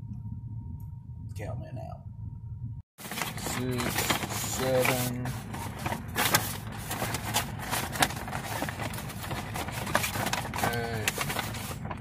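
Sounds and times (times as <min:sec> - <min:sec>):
paper bag rustling and crinkling: 0:03.0 - 0:12.0.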